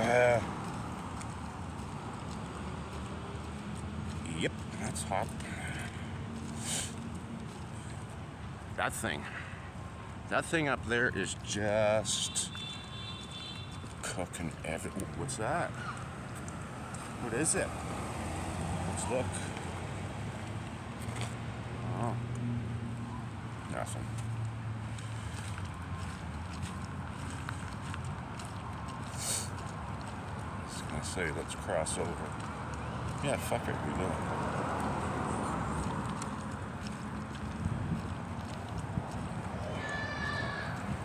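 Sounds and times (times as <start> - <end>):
vehicle engine humming: 0.0 - 39.9
faint footsteps on pavement: 0.0 - 41.0
car driving past: 15.8 - 20.4.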